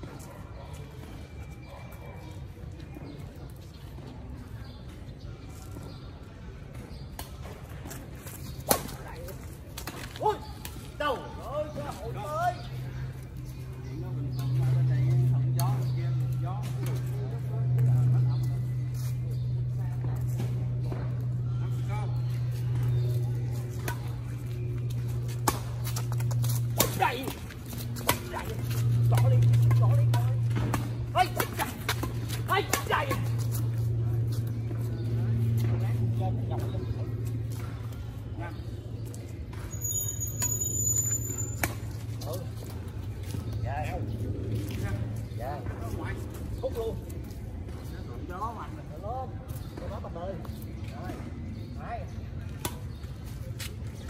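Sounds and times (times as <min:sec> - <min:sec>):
low hum: 0:12.7 - 0:47.7
rackets hitting shuttlecock: 0:25.0 - 0:33.6.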